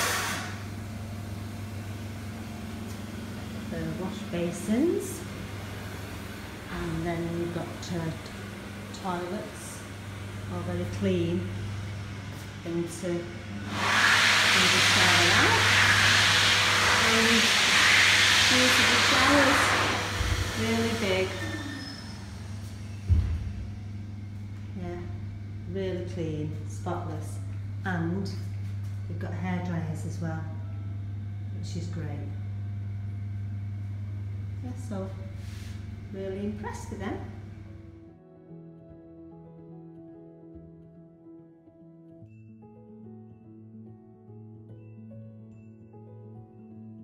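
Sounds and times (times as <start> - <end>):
low electrical hum: 0.0 - 13.8, 14.5 - 41.4.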